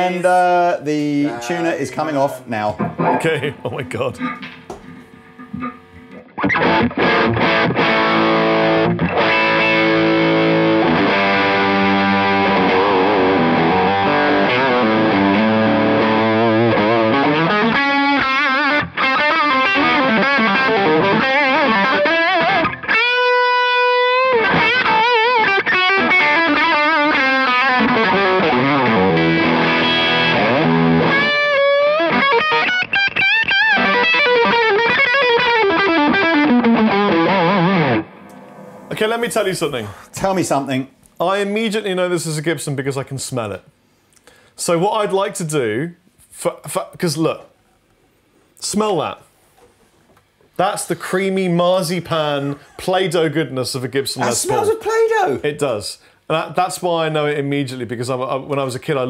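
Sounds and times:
overdriven electric guitar: 0:02.8 - 0:03.4, 0:04.2 - 0:39.0.

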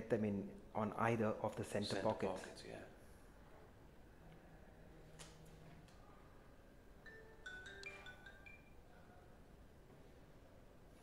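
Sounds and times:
faint bell-like notes: 0:07.0 - 0:09.2.

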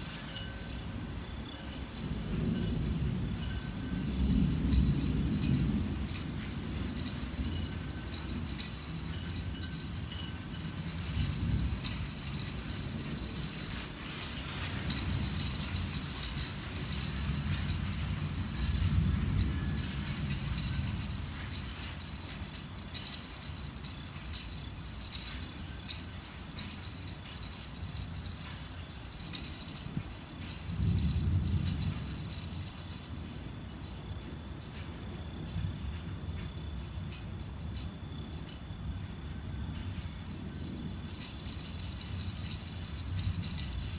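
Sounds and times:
night insects chirping: 0:00.0 - 0:43.9
thunder rumble: 0:00.0 - 0:43.9.

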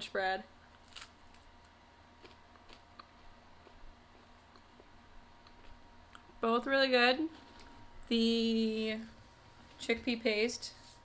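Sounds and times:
bread crunching as chewed: 0:00.7 - 0:06.3.

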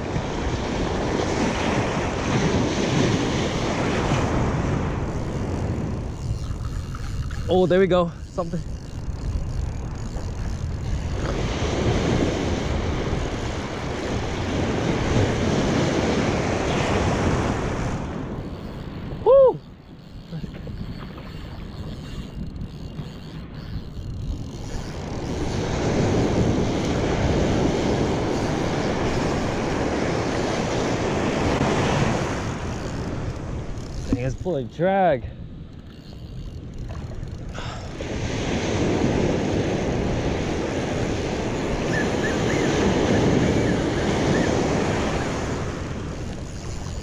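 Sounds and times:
surf washing over sand: 0:00.0 - 0:05.9, 0:11.2 - 0:18.4, 0:25.4 - 0:32.7, 0:38.0 - 0:46.4
wind on microphone: 0:00.0 - 0:47.0.

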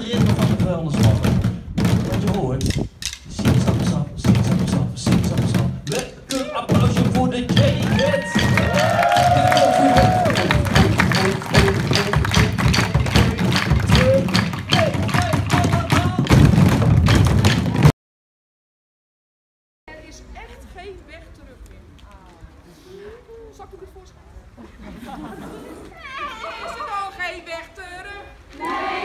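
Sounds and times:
children drumming on plastic buckets: 0:00.0 - 0:17.9
children calling out: 0:25.8 - 0:27.0.

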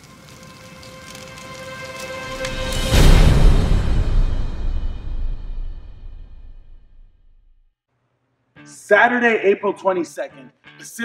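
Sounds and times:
crackling hissing noise: 0:00.0 - 0:04.4.

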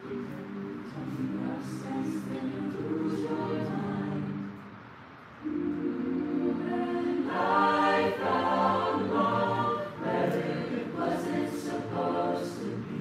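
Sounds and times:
a cappella group singing in harmony: 0:00.0 - 0:13.0.

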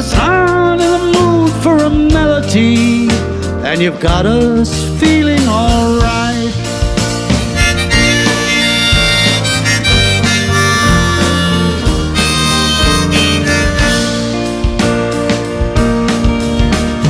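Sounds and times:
bass guitar: 0:00.0 - 0:17.0
drums: 0:00.0 - 0:17.0
keyboard: 0:00.0 - 0:17.0
harmonica: 0:06.5 - 0:15.3.

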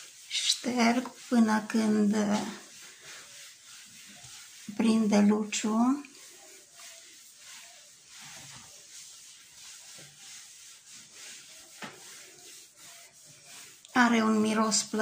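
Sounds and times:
cloth rubbing on wooden door: 0:00.0 - 0:15.0.

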